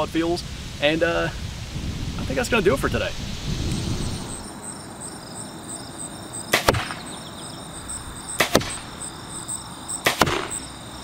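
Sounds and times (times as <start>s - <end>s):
insect chirping: 1.4s - 11.0s
arrows striking a target: 6.5s - 7.1s, 8.4s - 8.9s, 10.0s - 10.6s.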